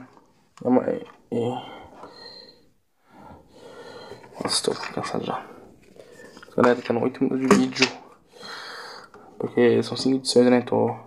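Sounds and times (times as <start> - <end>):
man breathing out through nose: 1.8 - 4.3, 8.3 - 9.2.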